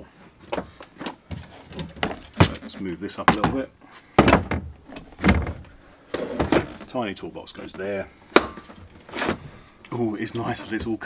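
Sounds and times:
plastic toolbox knocks and clatters: 0:00.6 - 0:06.9.

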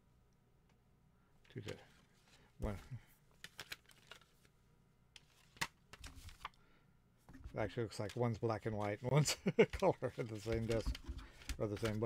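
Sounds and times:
paper booklet rustling: 0:01.6 - 0:04.6, 0:05.2 - 0:06.5, 0:07.3 - 0:12.0.

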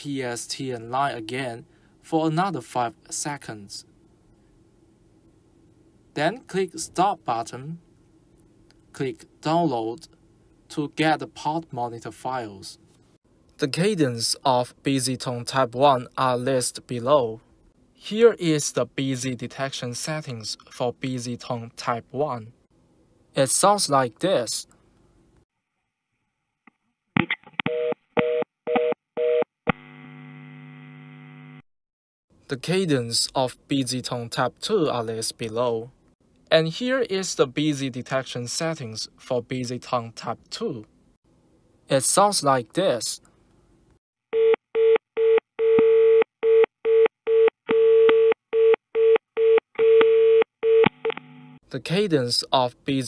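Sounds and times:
steady buzzing hum on line: 0:29.8 - 0:31.6
telephone busy tone: 0:44.4 - 0:51.6.

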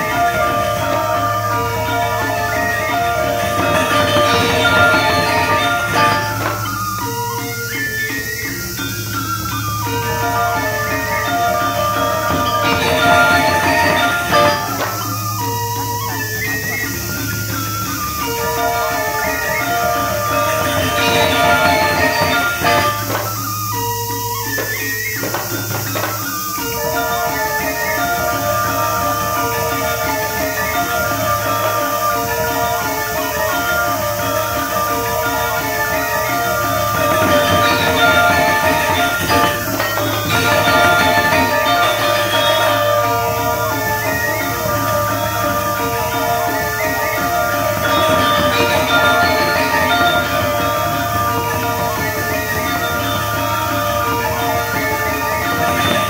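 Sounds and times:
bronze metallophone tones: 0:00.0 - 0:56.0.

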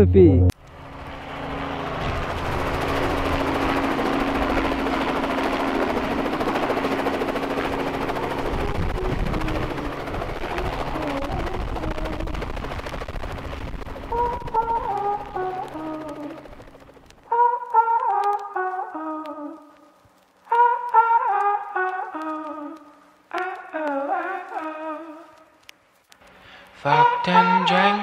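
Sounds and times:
helicopter engine and rotor whir: 0:00.6 - 0:17.3.

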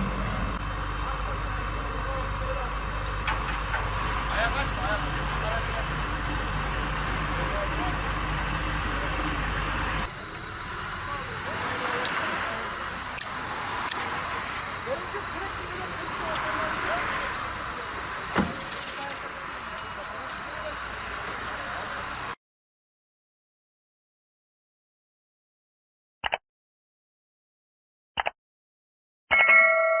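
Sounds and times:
highway traffic rumble: 0:00.0 - 0:22.4
vehicles idling: 0:00.0 - 0:22.4
faint voices talking: 0:00.8 - 0:22.4
sharp clicks: 0:26.2 - 0:26.4
bright bell ding: 0:29.3 - 0:30.0.

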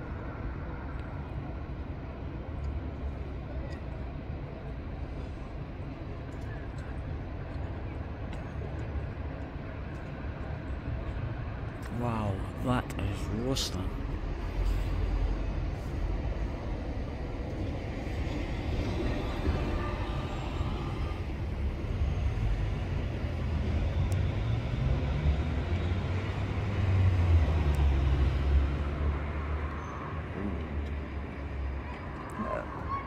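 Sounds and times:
road traffic rumble: 0:00.0 - 0:33.0.

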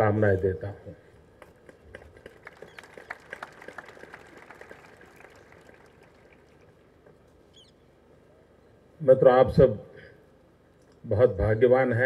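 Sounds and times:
audience clapping: 0:01.4 - 0:07.2.

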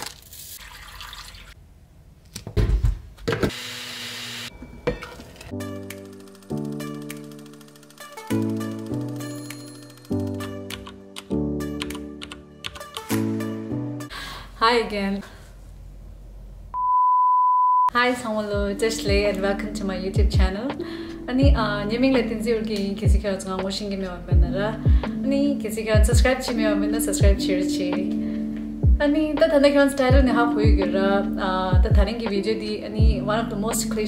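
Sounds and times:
blender motor whirring: 0:03.4 - 0:04.5
high-pitched beep tone: 0:16.8 - 0:17.9.

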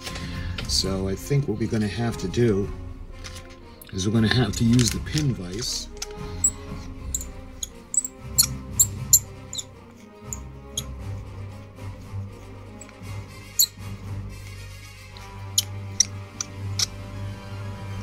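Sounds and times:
background music: 0:00.0 - 0:18.0
plastic model clicks and ticks: 0:04.5 - 0:06.6.

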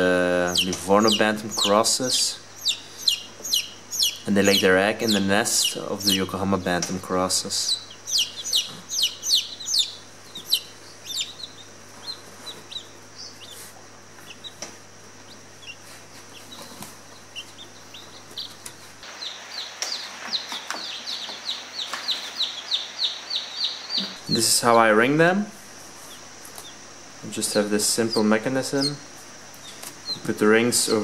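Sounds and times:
chicks peeping: 0:00.0 - 0:25.1, 0:25.8 - 0:31.0.

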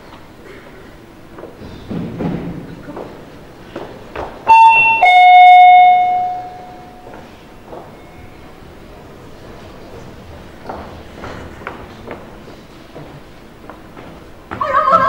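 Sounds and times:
ding-dong doorbell chime: 0:04.5 - 0:07.2.

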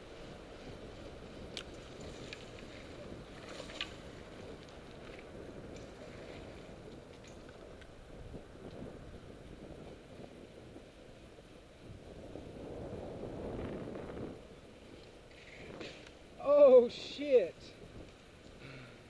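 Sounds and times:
wind noise on microphone: 0:00.0 - 0:19.0.

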